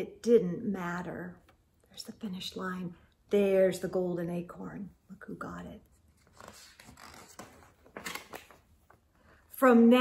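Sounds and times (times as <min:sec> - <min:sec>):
page turning with paper rustles: 0:05.9 - 0:09.0.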